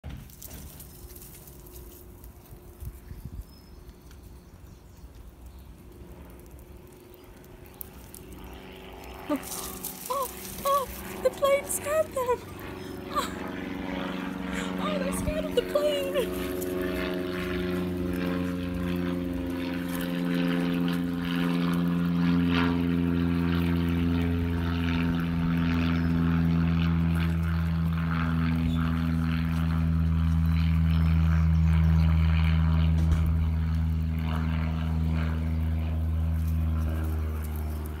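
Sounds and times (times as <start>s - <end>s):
propeller plane engine drone: 0.0s - 38.0s.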